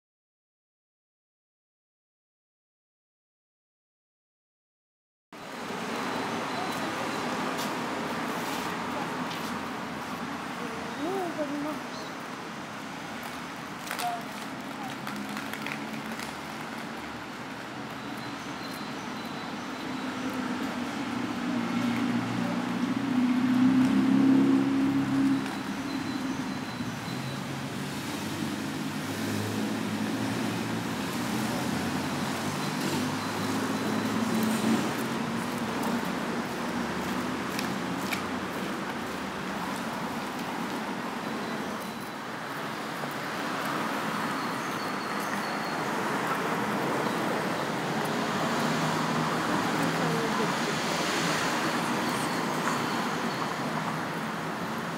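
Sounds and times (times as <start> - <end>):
street traffic noise: 5.3 - 54.9
vehicle driving past: 21.0 - 25.8.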